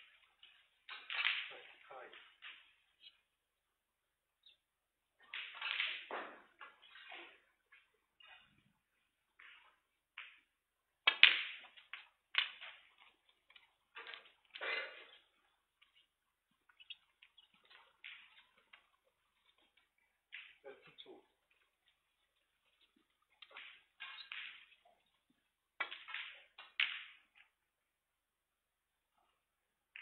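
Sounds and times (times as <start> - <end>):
snooker balls knocking and clicking: 0.0 - 3.3, 5.2 - 27.6.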